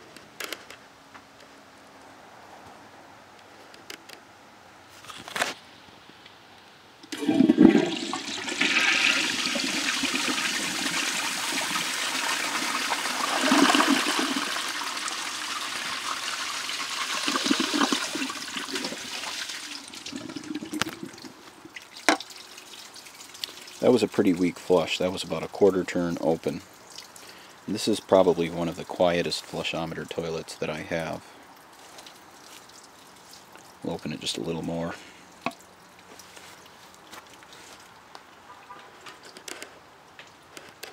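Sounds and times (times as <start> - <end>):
toilet flushing: 7.1 - 22.5.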